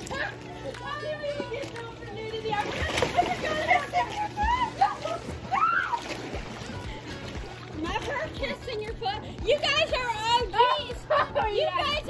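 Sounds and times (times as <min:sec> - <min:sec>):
water splashing in a pool: 0:00.0 - 0:11.2
voices: 0:00.0 - 0:12.0.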